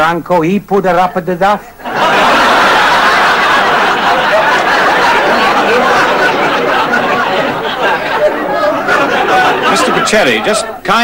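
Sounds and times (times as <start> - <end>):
man speaking agitatedly: 0.0 - 1.7, 9.5 - 11.0
overlapping voices: 0.9 - 11.0.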